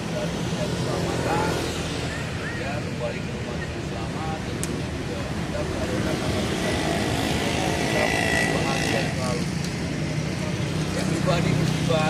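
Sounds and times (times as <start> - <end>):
faint voices: 0.0 - 12.0
road traffic noise: 0.0 - 12.0
vehicle passing by: 5.4 - 12.0.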